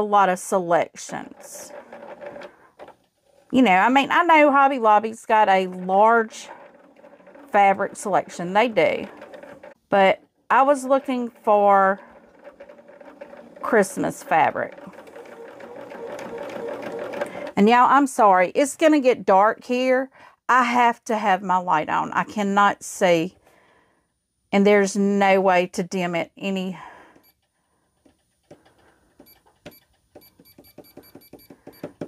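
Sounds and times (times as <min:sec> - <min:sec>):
sewing machine running: 0:01.1 - 0:17.6.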